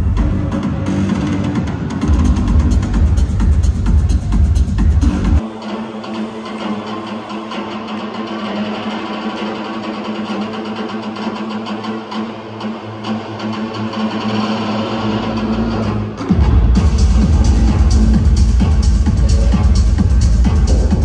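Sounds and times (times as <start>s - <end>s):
electronic dance music: 0.0s - 21.0s.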